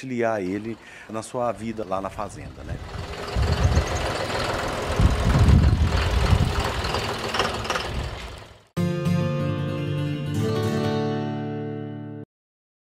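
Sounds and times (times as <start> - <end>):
tractor diesel engine running: 0.0 - 8.7.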